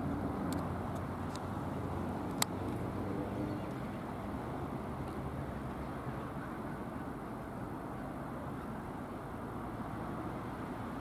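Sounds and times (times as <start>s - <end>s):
vehicle rumble: 0.0s - 11.0s.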